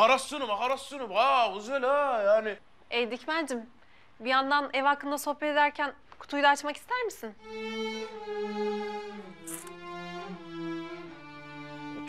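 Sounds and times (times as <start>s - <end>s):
brief hiss: 9.4s - 9.8s.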